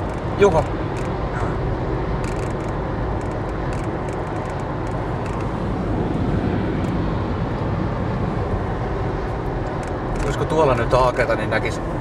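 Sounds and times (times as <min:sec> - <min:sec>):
car cabin road noise: 0:00.0 - 0:12.0.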